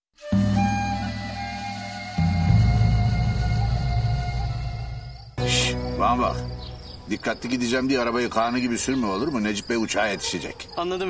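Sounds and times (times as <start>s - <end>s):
title music: 0.2s - 7.1s
outdoor ambience: 0.2s - 11.0s
high-pitched insect chirp: 0.4s - 11.0s.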